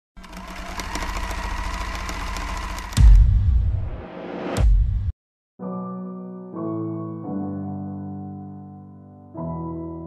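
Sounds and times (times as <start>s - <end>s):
rapid mechanical clattering: 0.2s - 3.3s.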